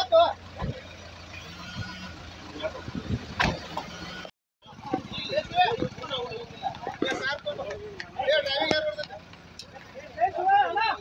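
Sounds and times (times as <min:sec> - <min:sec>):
engine idling: 0:00.0 - 0:11.0.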